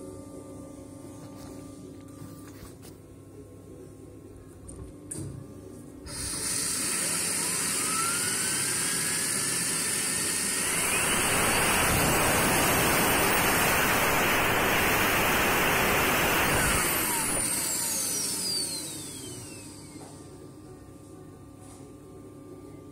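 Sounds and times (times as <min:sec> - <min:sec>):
rotor whine: 0:10.5 - 0:20.1
rush of air: 0:10.6 - 0:17.4.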